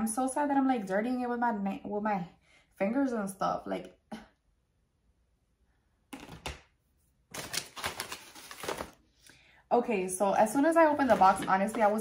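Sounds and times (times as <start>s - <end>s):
packing paper crinkling: 7.3s - 9.1s.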